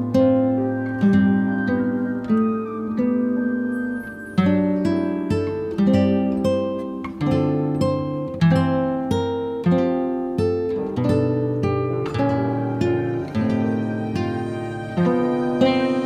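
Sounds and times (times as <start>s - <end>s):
plucked guitar notes: 0.0s - 16.0s.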